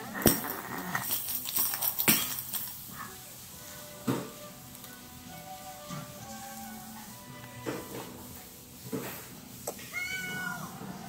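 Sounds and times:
cat meowing: 9.8s - 11.0s.

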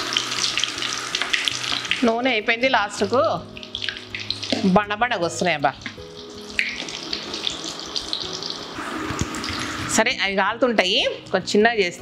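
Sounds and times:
food deep-frying in oil: 0.0s - 12.0s.

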